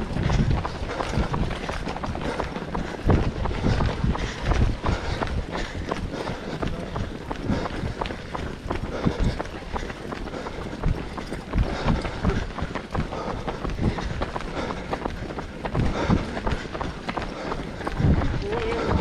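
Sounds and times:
runners' footsteps on tarmac: 0:00.0 - 0:19.0.

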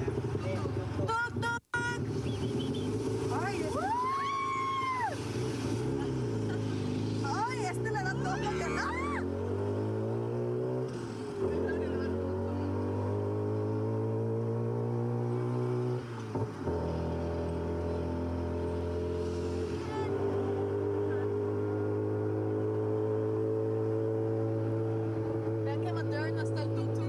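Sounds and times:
auto rickshaw engine running: 0:00.0 - 0:27.0.

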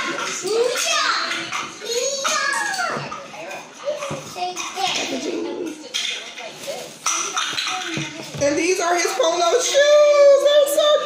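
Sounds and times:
children talking and calling out: 0:00.0 - 0:06.3, 0:07.0 - 0:11.0.

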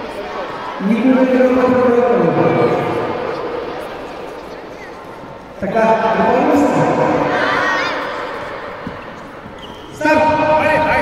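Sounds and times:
children shouting and cheering: 0:06.4 - 0:08.8.

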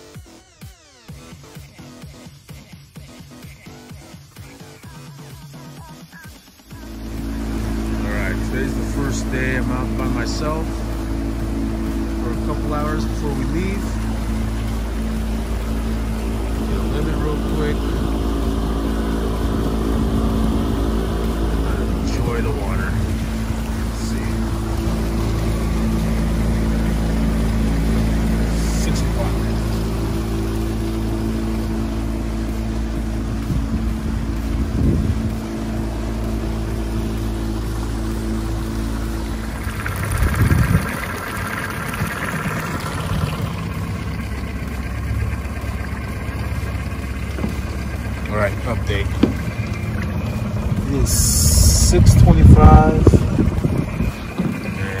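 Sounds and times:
outboard motor running: 0:00.0 - 0:55.0
short burst of engine noise: 0:06.6 - 0:55.0.

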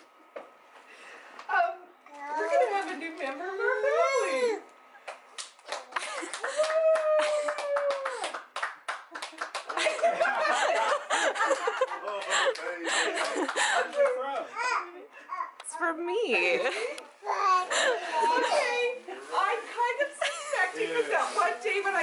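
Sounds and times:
toddler babbling and squealing: 0:17.2 - 0:17.7.

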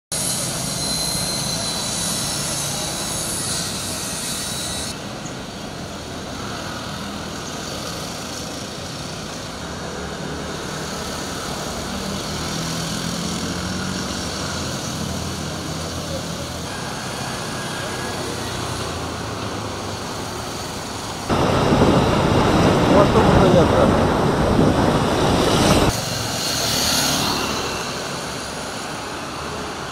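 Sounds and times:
motorcycles and cars passing: 0:00.2 - 0:29.9
loud rushing noise: 0:06.0 - 0:29.9.

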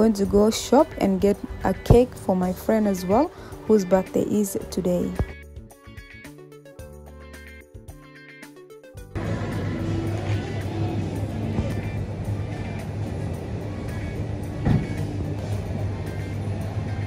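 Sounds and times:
music playing: 0:00.0 - 0:17.0.

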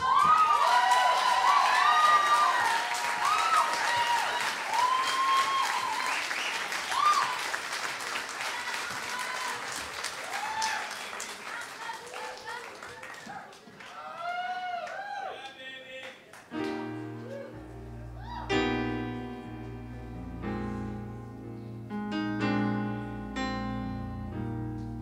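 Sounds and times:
cheering and whoops: 0:00.0 - 0:07.6, 0:08.5 - 0:11.1, 0:13.9 - 0:15.5, 0:17.2 - 0:18.7
audience applauding: 0:00.0 - 0:17.6.

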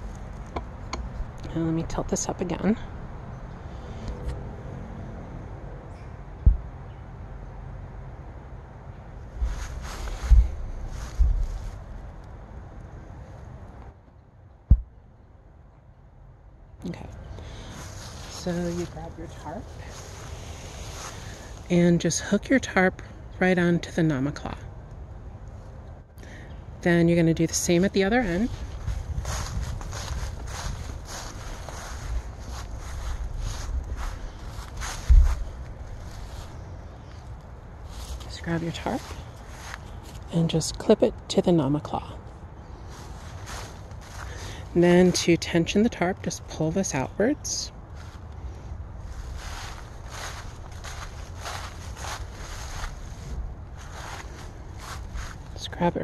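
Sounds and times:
low steady rumble: 0:00.0 - 0:56.0
low thump: 0:06.4 - 0:06.7, 0:14.7 - 0:14.9, 0:35.1 - 0:35.4
footsteps crunching dry leaves: 0:09.4 - 0:12.0, 0:17.7 - 0:21.7, 0:28.4 - 0:40.2, 0:42.8 - 0:44.7, 0:47.9 - 0:48.3, 0:49.0 - 0:55.7.

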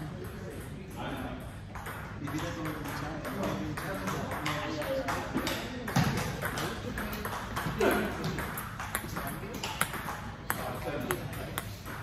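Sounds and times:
table tennis ball clicking: 0:01.7 - 0:12.0.

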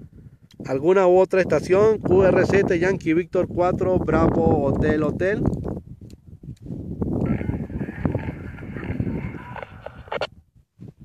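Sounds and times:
hissy garbled radio reception: 0:07.2 - 0:10.3.

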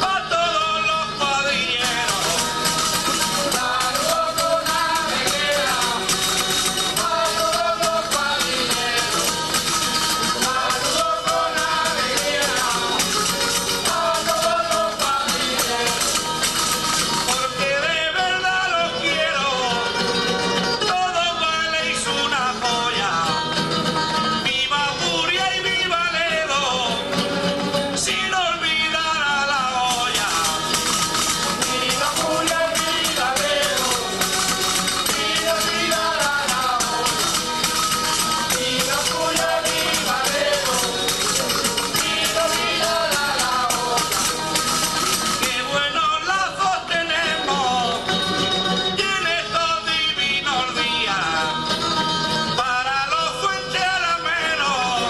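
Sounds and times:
plucked string accompaniment: 0:00.0 - 0:55.0
strummed lutes and guitar: 0:00.0 - 0:55.0
man singing ornamented verse: 0:10.2 - 0:16.3, 0:28.0 - 0:48.0.

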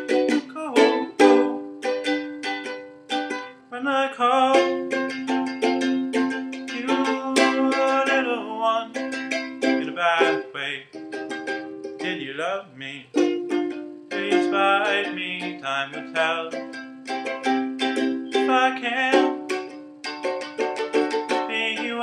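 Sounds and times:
man singing: 0:00.0 - 0:01.5, 0:03.3 - 0:05.3, 0:06.2 - 0:11.1, 0:11.9 - 0:19.8, 0:21.1 - 0:22.0
ukulele chords: 0:00.0 - 0:22.0.

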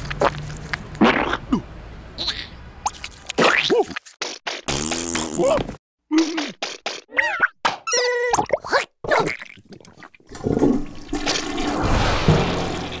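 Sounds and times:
squeaky cartoon vocal sounds: 0:07.1 - 0:09.7
rushing flushing water: 0:10.3 - 0:13.0.

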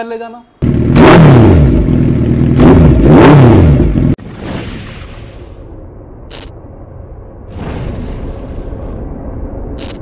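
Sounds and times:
motorcycle engine revving: 0:00.6 - 0:04.2.

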